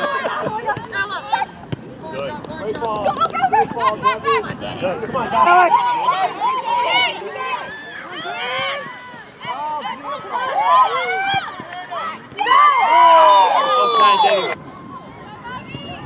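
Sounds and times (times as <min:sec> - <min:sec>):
crowd shouting: 0:03.2 - 0:16.0.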